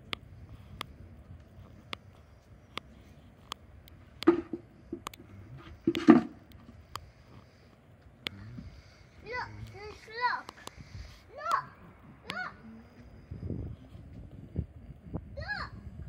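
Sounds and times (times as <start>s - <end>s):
sharp clicks: 1.9s - 7.1s
children calling out: 9.2s - 13.0s
children shouting: 11.3s - 12.6s.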